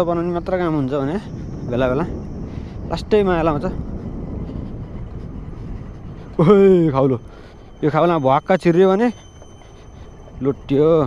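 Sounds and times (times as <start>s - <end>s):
motor scooter engine and road noise: 0.0s - 9.2s
wind buffeting microphone: 0.0s - 11.0s.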